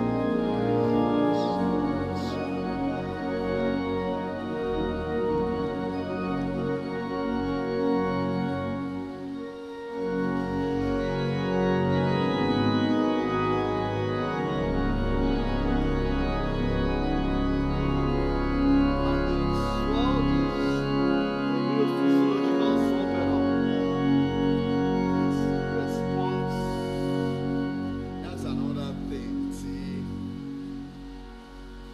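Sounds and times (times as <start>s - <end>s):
church organ chords: 0.0s - 31.9s
deep bass organ note: 10.3s - 31.9s.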